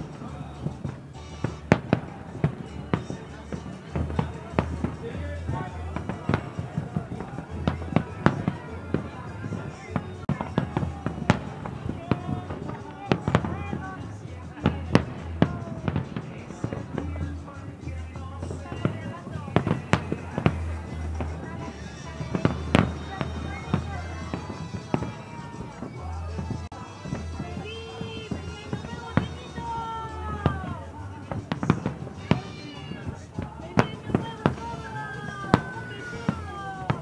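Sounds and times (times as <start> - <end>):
fireworks bursting with sharp bangs: 0.0 - 37.0.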